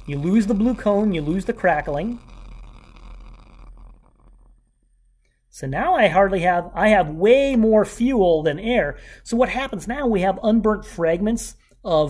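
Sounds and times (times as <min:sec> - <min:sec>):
burner flame crackling and rushing: 0:00.0 - 0:04.7.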